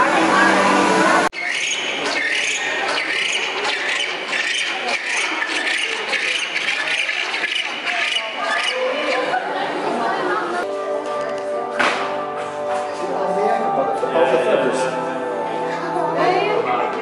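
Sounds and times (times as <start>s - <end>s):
crowd chatter: 0.0s - 17.0s
penguins calling: 1.3s - 9.7s
background music: 10.6s - 17.0s.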